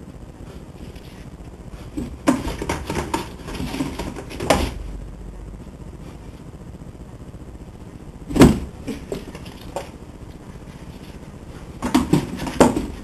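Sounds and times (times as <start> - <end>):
cat thumping cardboard box: 11.8 - 13.0.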